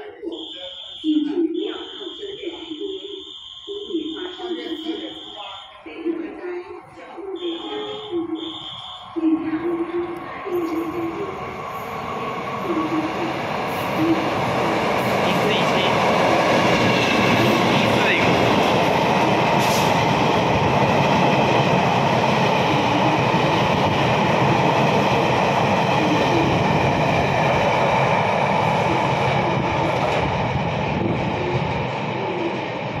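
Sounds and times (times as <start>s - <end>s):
train wheels rumbling on rails: 7.3s - 33.0s.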